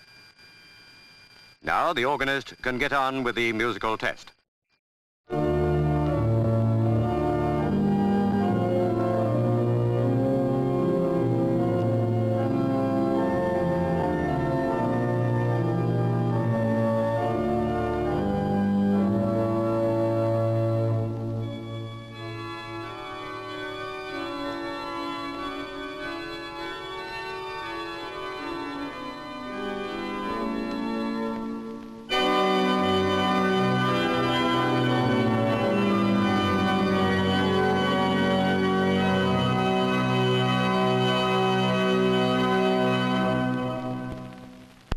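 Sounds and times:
pipe organ playing sustained chords: 5.3s - 44.4s.

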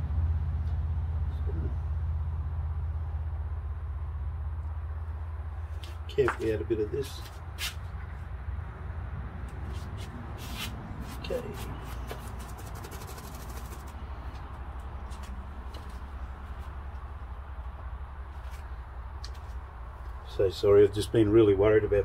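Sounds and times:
low rumble of outdoor noise: 0.0s - 22.0s.

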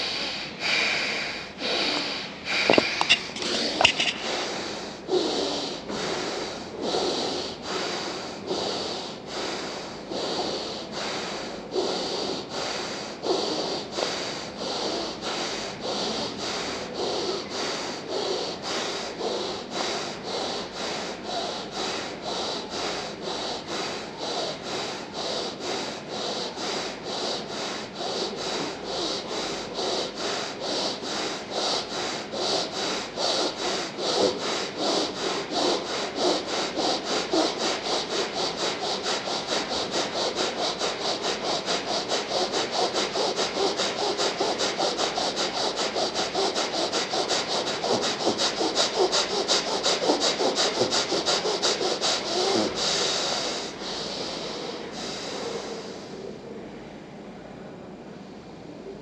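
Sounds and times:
rapid forceful breathing through nose: 0.0s - 56.4s.

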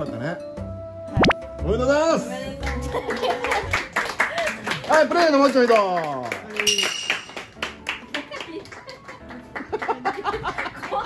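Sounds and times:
hands clapping: 2.6s - 11.0s.

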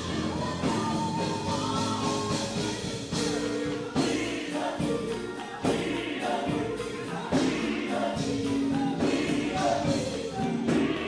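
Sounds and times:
backing singers: 0.0s - 11.0s
keyboard: 0.0s - 11.0s
woman singing lead: 0.0s - 11.0s.

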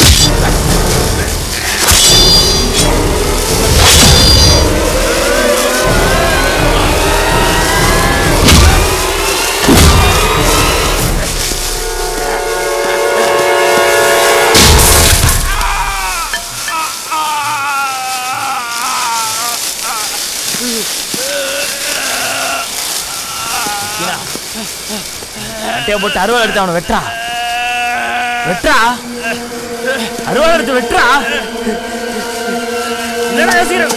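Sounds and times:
loud music hits: 0.0s - 12.0s
dramatic film music: 0.0s - 33.9s.

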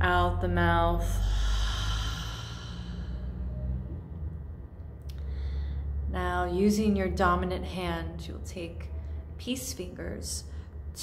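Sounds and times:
woman exhaling deeply: 1.0s - 3.9s.

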